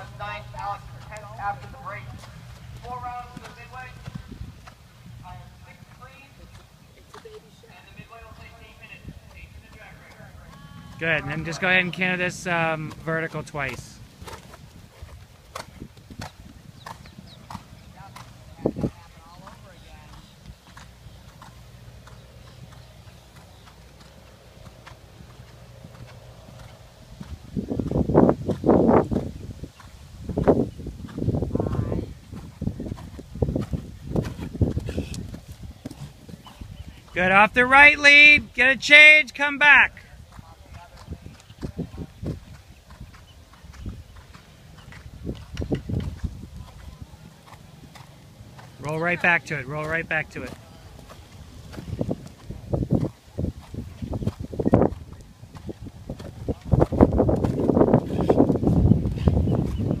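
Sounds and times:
horse hoofbeats on sand: 0.0s - 38.0s, 40.0s - 60.0s.

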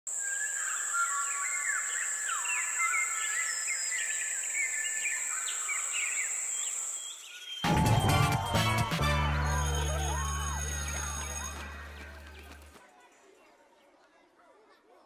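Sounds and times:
music with heavy bass: 7.7s - 9.8s.

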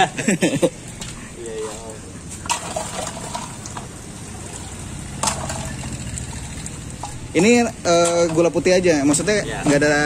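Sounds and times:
liquid sloshing and splashing: 2.4s - 7.3s.

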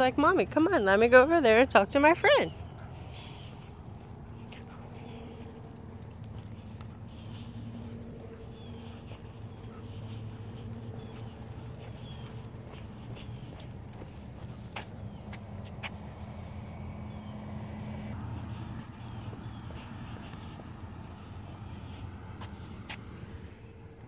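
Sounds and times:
dog whimpering: 0.8s - 14.3s.

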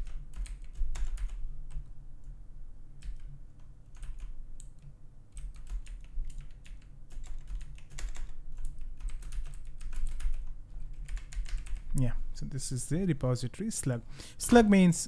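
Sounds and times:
typing on computer keyboard: 0.0s - 1.9s, 3.0s - 12.0s
steady low hum: 0.0s - 15.0s.

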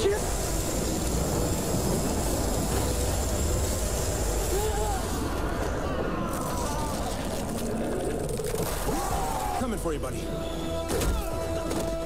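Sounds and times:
rushing blast of fire: 0.0s - 10.1s.

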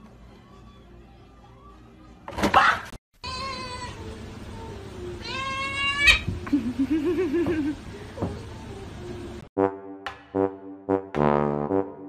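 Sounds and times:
cat meowing: 3.2s - 4.1s, 5.2s - 6.3s.

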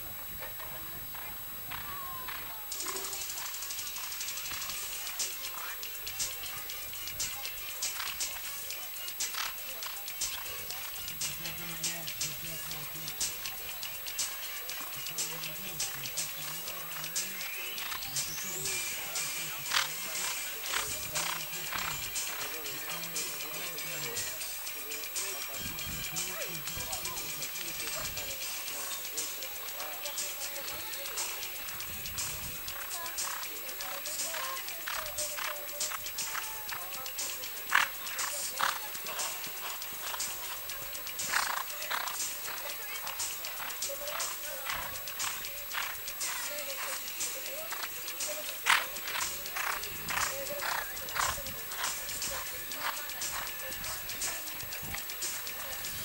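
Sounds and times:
horse hoofbeats on grass: 19.7s - 22.6s, 37.7s - 43.0s, 48.6s - 54.1s.

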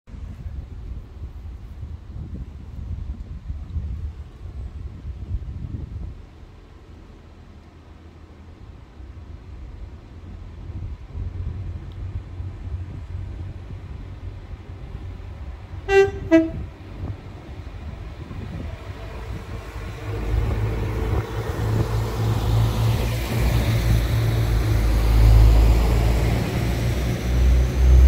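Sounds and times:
wind buffeting microphone: 0.1s - 6.7s, 9.0s - 28.0s
diesel train rumbling: 0.1s - 28.0s.

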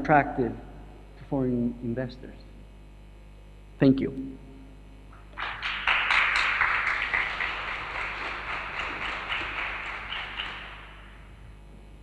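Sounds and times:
audience applauding: 5.3s - 11.3s.

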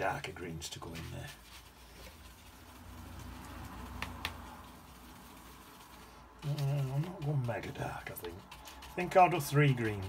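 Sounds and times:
brush tapping palette: 3.1s - 10.0s.

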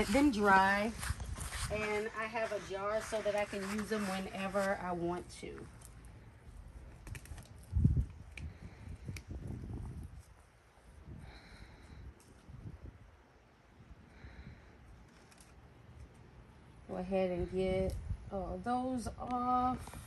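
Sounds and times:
soft rustling of flowers: 0.0s - 13.3s, 14.1s - 20.0s.

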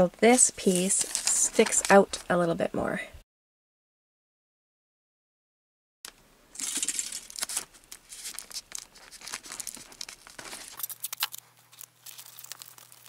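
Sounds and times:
aluminium foil crinkling: 0.6s - 2.2s, 6.6s - 13.0s
masking tape ripping off roll: 6.6s - 13.0s.

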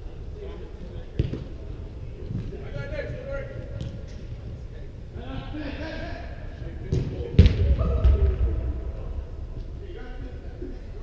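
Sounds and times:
soccer ball kicks: 6.9s - 8.5s.

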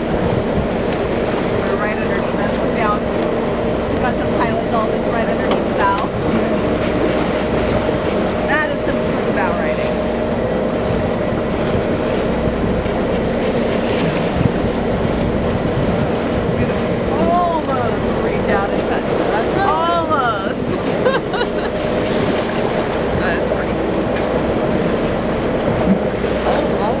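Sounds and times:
boat engine running: 0.0s - 27.0s
choppy water against hull: 0.0s - 27.0s
wind: 0.0s - 27.0s.

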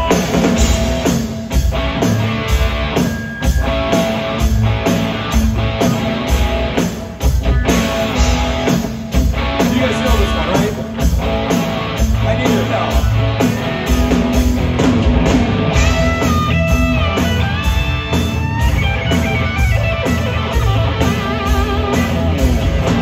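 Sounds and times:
bass guitar: 0.0s - 23.0s
drum kit beat: 0.0s - 23.0s
electric guitars: 0.0s - 23.0s.

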